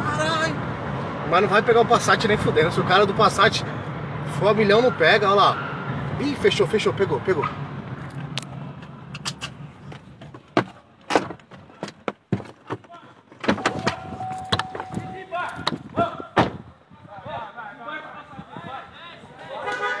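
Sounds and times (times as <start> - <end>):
car doors banging: 9.9 - 16.7
steady beep: 13.6 - 15.3.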